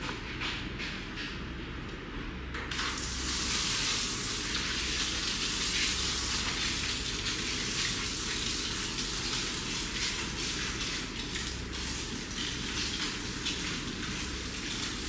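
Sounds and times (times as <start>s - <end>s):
water spraying from shower sprayer: 2.7s - 15.0s.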